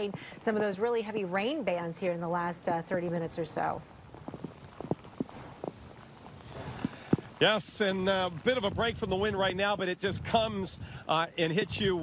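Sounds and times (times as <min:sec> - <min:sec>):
rain: 0:03.0 - 0:12.0
storm wind: 0:03.2 - 0:12.0.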